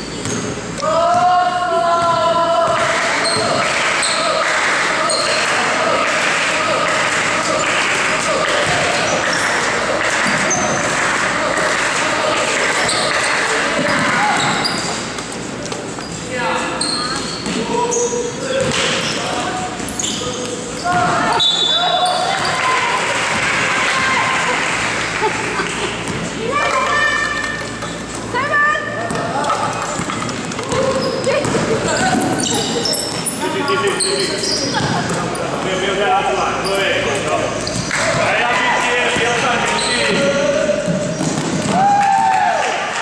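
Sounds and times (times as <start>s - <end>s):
echoing crowd shouting: 0.8s - 14.8s, 17.6s - 29.8s, 37.9s - 43.0s.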